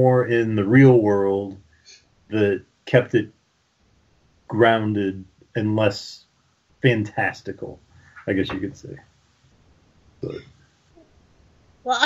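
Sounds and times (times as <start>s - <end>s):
person saying yeah: 0.0s - 1.5s, 2.4s - 3.2s, 4.5s - 6.1s, 6.9s - 7.6s
low background hiss: 0.0s - 12.0s.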